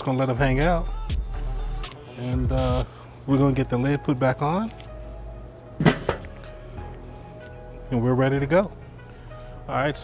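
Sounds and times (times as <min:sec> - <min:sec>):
lid knocking as it settles: 0:05.8 - 0:06.3
metal grill lid clanking: 0:05.8 - 0:06.3.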